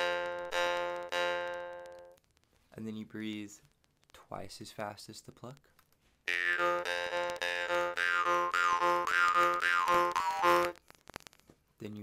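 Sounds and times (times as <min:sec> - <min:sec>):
jaw harp droning: 0:06.3 - 0:10.8.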